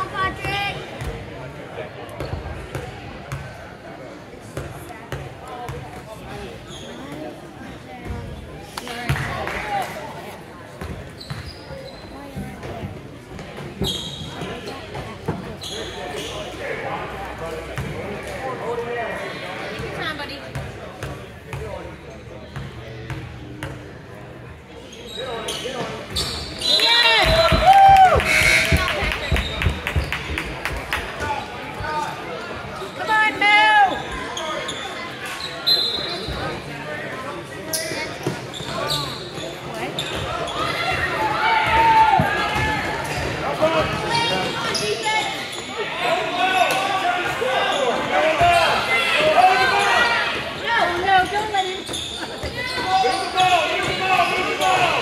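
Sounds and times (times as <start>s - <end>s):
spectators talking and shouting: 0.0s - 55.0s
basketball bouncing on court: 27.2s - 30.8s.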